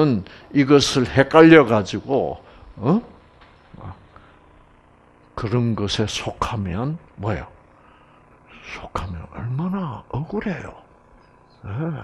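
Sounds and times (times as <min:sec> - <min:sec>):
man speaking: 0:08.6 - 0:10.9.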